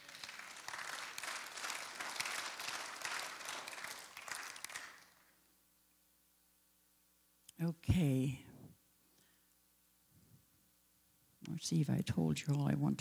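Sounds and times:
congregation applauding: 0:00.0 - 0:05.4.

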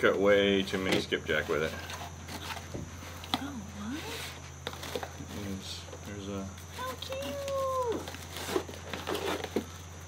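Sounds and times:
packing material rustling in a box: 0:06.7 - 0:09.9.

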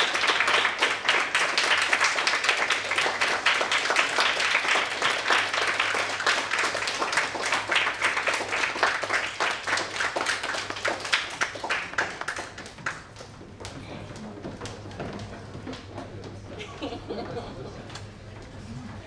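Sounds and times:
audience applauding: 0:00.0 - 0:15.9.

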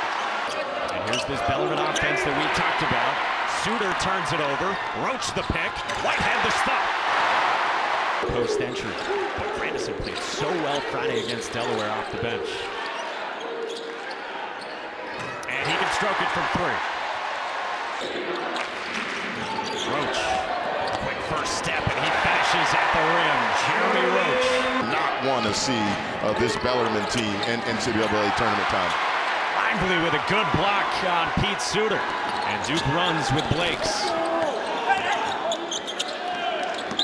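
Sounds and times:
arena crowd voices: 0:00.0 - 0:37.0.

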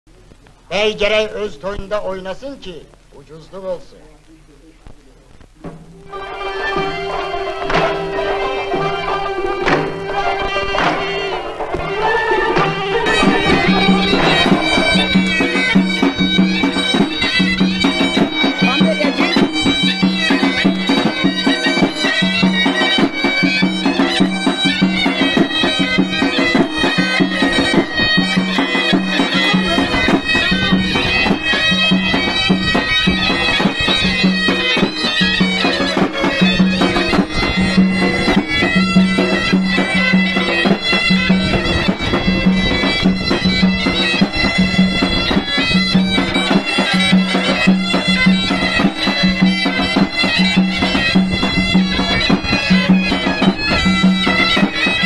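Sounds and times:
shrill zurna melody: 0:05.4 - 0:55.0
large drum beating: 0:05.5 - 0:55.0
low zurna drone: 0:05.6 - 0:55.0.

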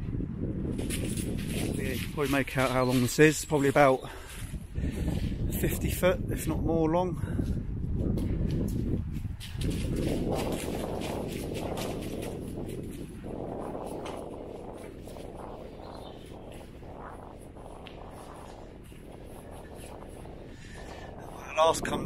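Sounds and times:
wind rumble on microphone: 0:00.0 - 0:22.0
footsteps crunching on gravel: 0:09.4 - 0:20.3.

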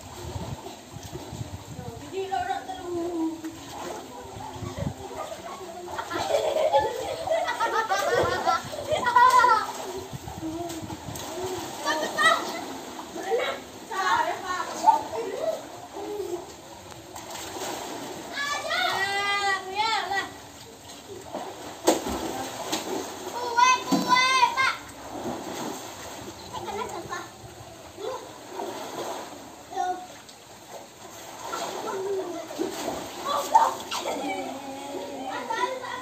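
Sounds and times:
water splashing and sloshing: 0:00.0 - 0:36.0
children calling out: 0:04.2 - 0:16.6, 0:18.3 - 0:20.4, 0:31.6 - 0:36.0.

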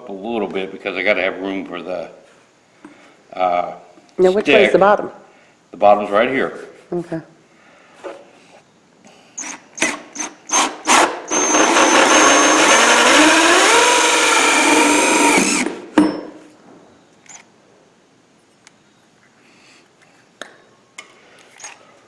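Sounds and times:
cordless drill cutting plastic: 0:09.4 - 0:15.8.

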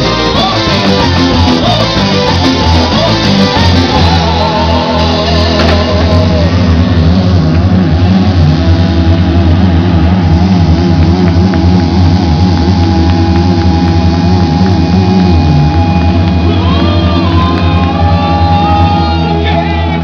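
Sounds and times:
steady held tone: 0:00.0 - 0:19.4
live rock band playing: 0:00.0 - 0:20.0.

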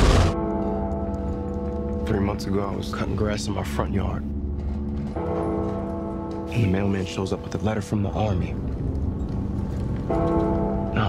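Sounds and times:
held musical chord: 0:00.3 - 0:11.0.

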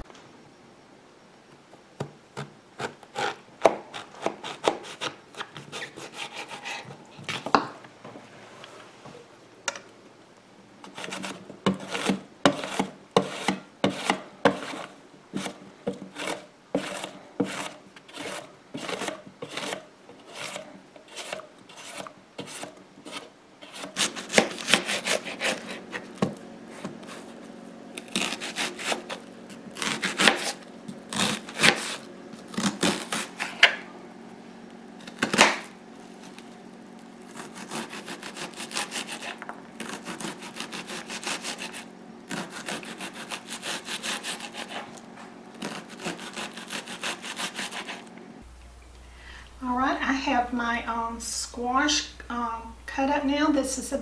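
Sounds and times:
faint steady hum: 0:00.0 - 0:54.0
knife cutting onion on cutting board: 0:02.4 - 0:07.6, 0:10.9 - 0:27.4, 0:28.0 - 0:33.8, 0:35.1 - 0:35.7, 0:37.3 - 0:45.0, 0:45.6 - 0:48.1
squash rubbing over mandoline blade: 0:04.2 - 0:06.9, 0:10.9 - 0:33.7, 0:37.3 - 0:45.0, 0:45.6 - 0:48.1.

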